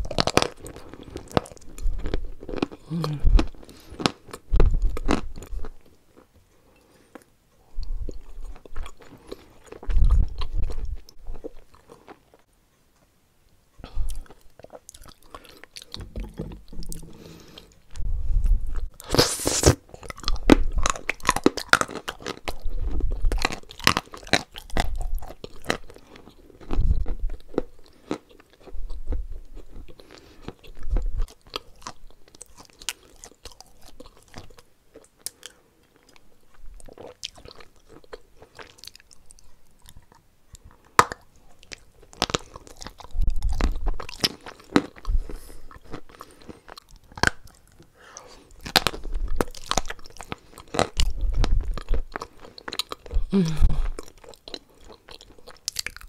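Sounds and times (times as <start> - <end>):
moist mouth sounds: 0.0 - 5.8, 7.2 - 12.2, 13.8 - 34.5, 35.3 - 56.0
crunchy chewing of chalk paste: 0.0 - 6.4, 7.0 - 12.5, 14.0 - 56.0
dull thumps: 16.0 - 18.0.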